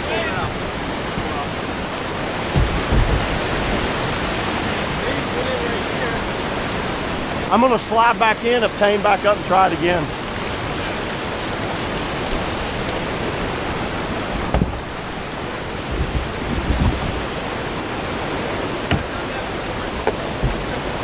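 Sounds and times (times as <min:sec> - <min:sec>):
whitewater rapids over rocks: 0:00.0 - 0:21.0
dull thumps: 0:02.5 - 0:04.0, 0:14.4 - 0:14.9.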